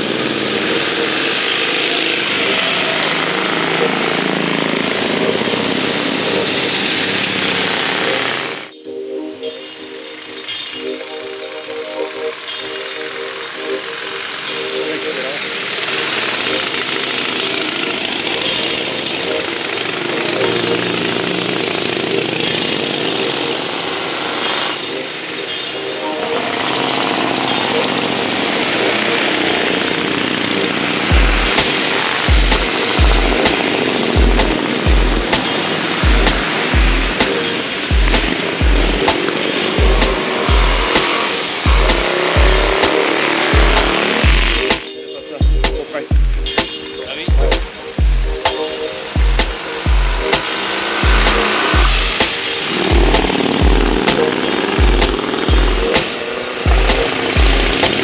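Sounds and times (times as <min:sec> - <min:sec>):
small car engines racing past: 0:00.0 - 0:08.7, 0:12.4 - 0:44.9, 0:48.6 - 0:58.0.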